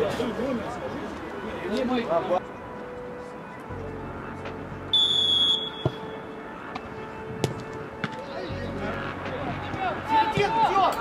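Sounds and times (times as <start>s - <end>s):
referee's whistle blast: 4.9s - 6.1s.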